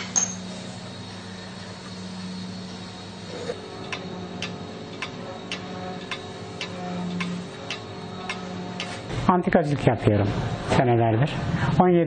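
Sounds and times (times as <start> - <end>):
faint steady hum: 0.0 - 12.0
pendulum clock ticking: 3.9 - 9.0.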